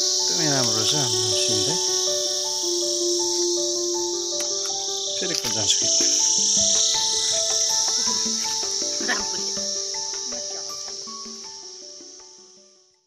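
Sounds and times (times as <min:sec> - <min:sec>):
background music melody: 0:00.0 - 0:13.0
insects droning: 0:00.0 - 0:13.0.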